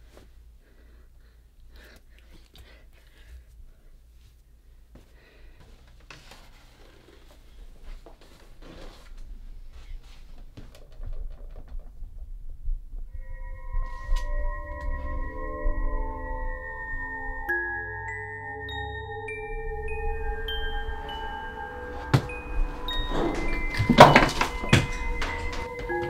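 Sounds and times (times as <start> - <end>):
low rumbling drone: 12.1 - 26.0
breathy sounds: 13.2 - 26.0
soft knocks: 21.8 - 26.0.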